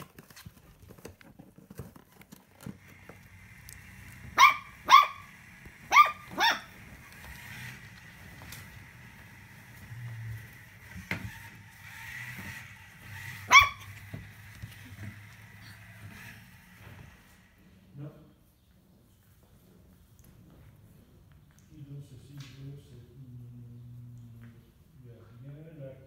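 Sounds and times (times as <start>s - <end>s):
puppy barking: 4.2s - 7.0s, 13.3s - 14.1s.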